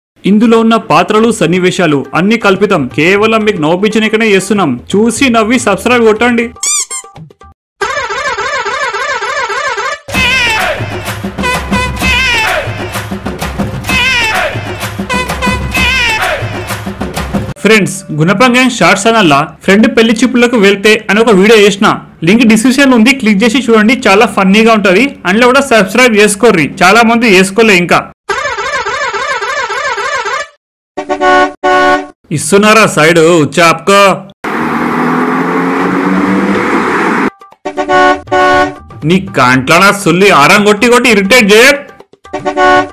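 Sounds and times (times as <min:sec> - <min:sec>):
person speaking: 0:00.2 - 0:06.6
warbling horn: 0:07.8 - 0:12.9, 0:13.8 - 0:16.7, 0:37.2 - 0:38.8, 0:42.2 - 0:42.9
car horn honking: 0:11.4 - 0:12.7, 0:13.9 - 0:16.6, 0:28.3 - 0:32.1, 0:37.6 - 0:38.8, 0:42.2 - 0:42.9.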